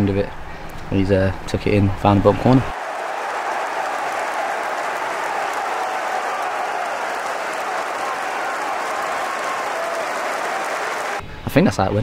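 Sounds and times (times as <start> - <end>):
stadium crowd applauding: 2.7 - 11.2.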